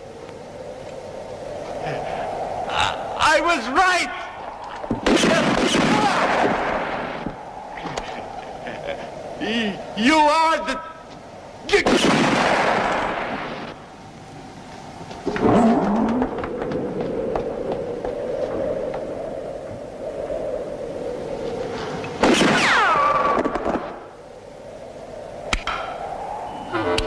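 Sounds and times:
echoing gunshots: 0:04.9 - 0:07.3, 0:11.7 - 0:13.8, 0:22.2 - 0:24.1
ricochet whine: 0:22.0 - 0:24.2, 0:25.5 - 0:27.0.

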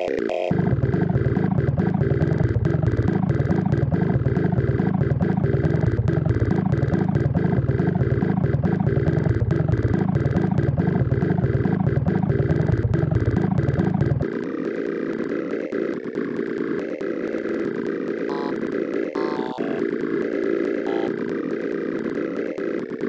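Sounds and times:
harsh pulsing sample loop: 0:00.0 - 0:23.0
steady drone: 0:18.3 - 0:22.6.

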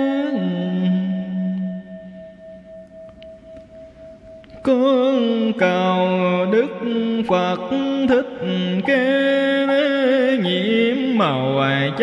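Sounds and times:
ringing bell tone: 0:00.0 - 0:07.8
person chanting: 0:00.0 - 0:12.0.

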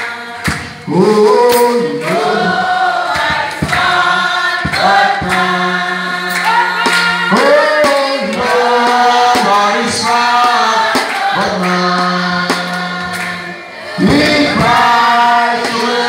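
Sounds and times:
group singing gospel song: 0:00.0 - 0:16.0.

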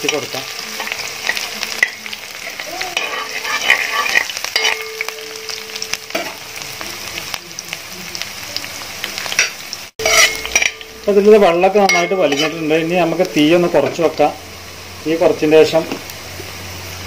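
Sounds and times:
spatula scraping pan: 0:00.0 - 0:05.0, 0:09.3 - 0:12.8
garlic sizzling in hot oil: 0:00.0 - 0:17.0.

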